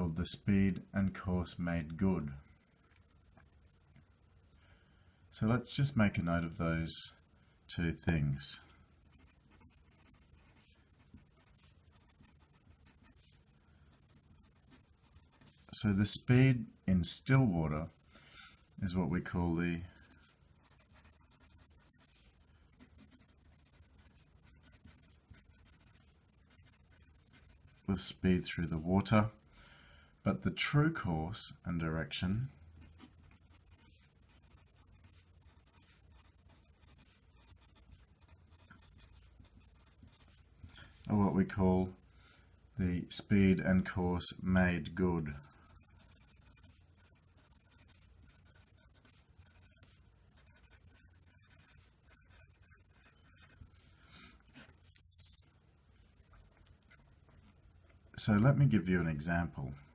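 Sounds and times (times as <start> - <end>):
pencil scratching on paper: 9.0 - 15.7, 19.9 - 28.1, 32.8 - 40.5, 45.3 - 53.7, 54.5 - 55.4.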